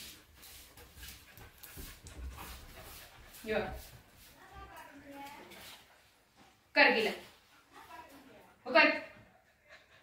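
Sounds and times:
dog panting: 0.0s - 6.6s, 7.2s - 10.0s.

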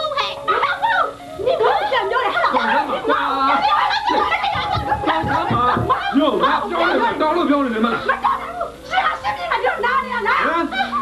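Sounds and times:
people shouting in an argument: 0.4s - 11.0s.

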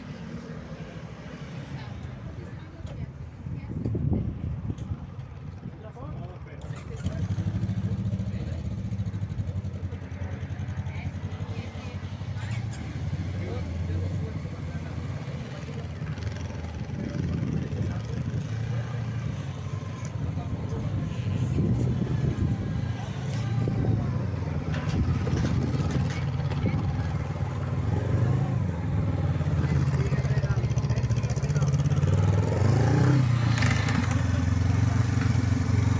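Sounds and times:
motorcycle engine running: 6.7s - 35.9s.

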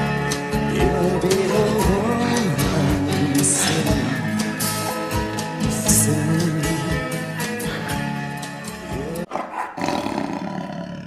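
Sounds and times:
song playing: 0.0s - 9.3s
rough roar-like sound effect: 9.8s - 11.0s.

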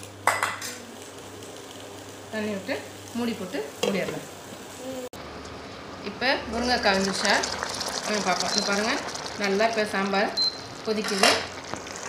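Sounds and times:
kitchenware clinking on pan: 11.0s - 11.5s.

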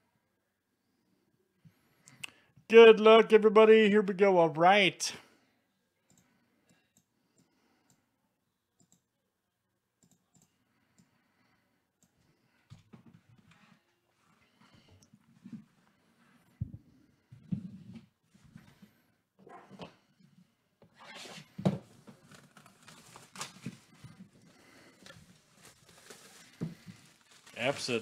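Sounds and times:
plastic wrap crinkling and tearing: 22.2s - 24.0s, 25.0s - 28.0s.

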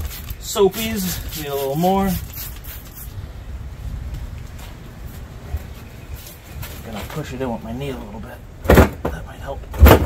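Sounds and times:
tire scuffing over rim: 3.8s - 7.5s.

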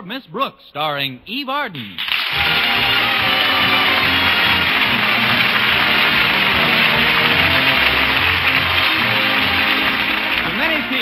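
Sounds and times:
theme music: 2.1s - 11.0s.

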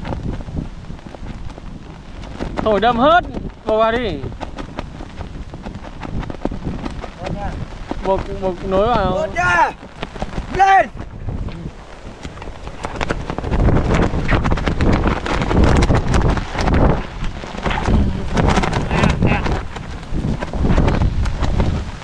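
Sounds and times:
kite fabric rustling and clattering: 0.0s - 22.0s
wind buffeting microphone: 0.0s - 22.0s.

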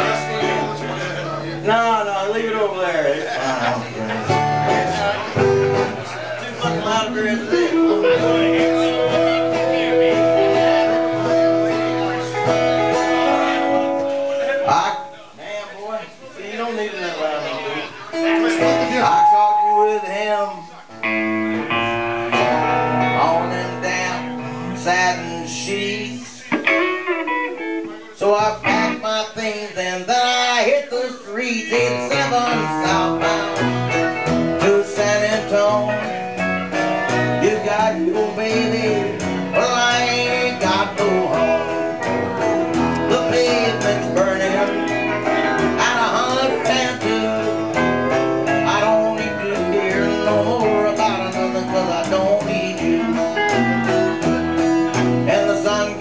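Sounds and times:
live band playing: 0.0s - 2.6s, 3.2s - 15.4s, 17.8s - 29.8s, 31.6s - 56.0s
upright bass: 0.0s - 15.4s, 17.2s - 56.0s
guitar playing: 0.0s - 16.2s, 17.2s - 56.0s.

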